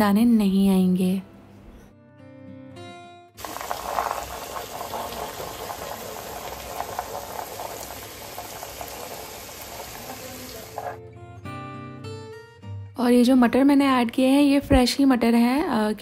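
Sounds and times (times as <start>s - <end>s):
masala sizzling and bubbling in pot: 3.4s - 11.0s.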